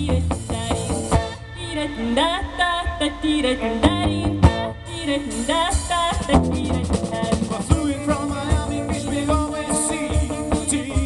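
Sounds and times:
drum kit: 0:00.0 - 0:11.0
electric guitar: 0:00.0 - 0:11.0
voices singing wordless phrases: 0:01.6 - 0:11.0.

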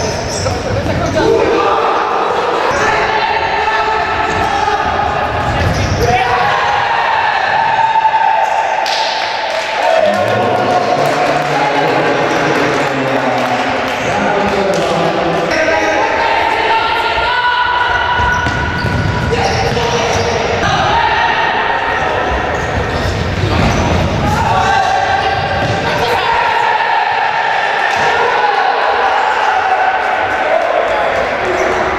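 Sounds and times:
echoing players' voices: 0:00.0 - 0:31.9.

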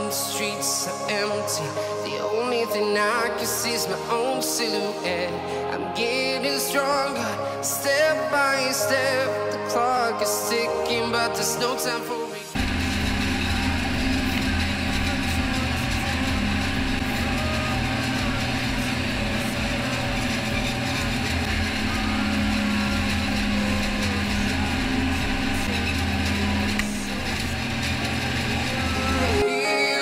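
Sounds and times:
harvesting machine droning: 0:12.6 - 0:29.4.

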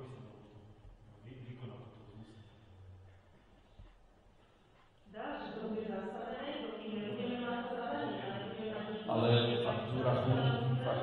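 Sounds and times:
man speaking: 0:00.0 - 0:00.5, 0:01.2 - 0:02.6, 0:09.0 - 0:11.0.

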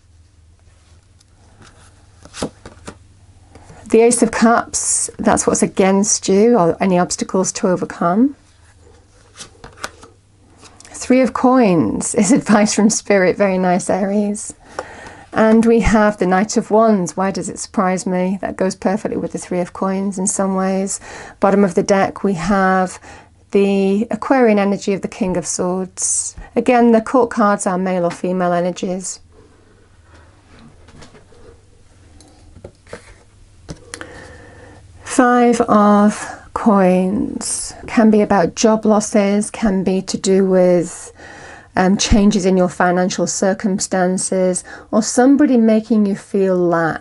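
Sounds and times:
low steady hum: 0:00.0 - 0:47.0.

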